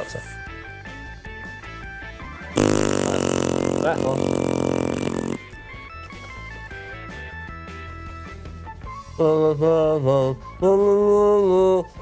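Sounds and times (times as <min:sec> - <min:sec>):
person saying ah: 0:02.6 - 0:05.1
game show buzzer: 0:02.6 - 0:05.4.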